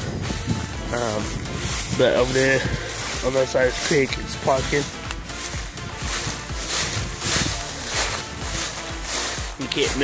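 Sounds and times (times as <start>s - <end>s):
footsteps through dry leaves: 0.0s - 10.0s.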